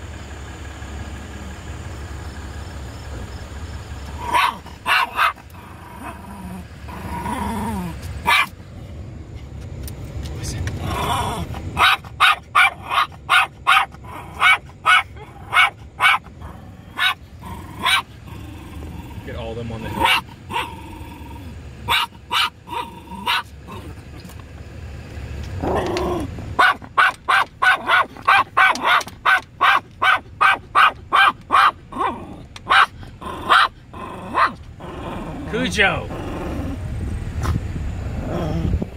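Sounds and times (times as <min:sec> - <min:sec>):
small dog barking: 0:04.2 - 0:06.2, 0:08.2 - 0:08.6, 0:11.1 - 0:18.2, 0:19.8 - 0:20.8, 0:21.8 - 0:24.0, 0:25.8 - 0:34.6
small dog growling: 0:04.2 - 0:08.1, 0:10.8 - 0:11.8, 0:15.2 - 0:22.0, 0:22.6 - 0:24.3, 0:25.6 - 0:26.3, 0:31.6 - 0:36.9, 0:38.1 - 0:38.9.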